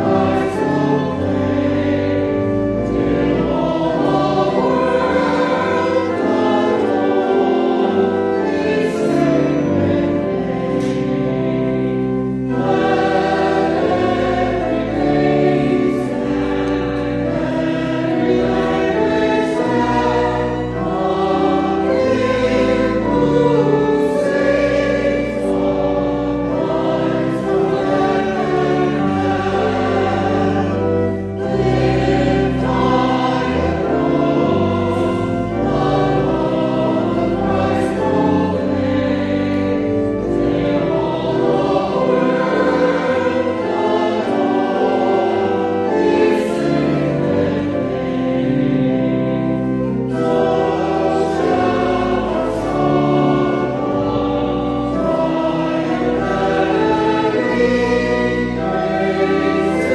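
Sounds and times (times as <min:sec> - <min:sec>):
organ: 0:00.0 - 0:59.9
voices singing a hymn: 0:00.0 - 0:59.9.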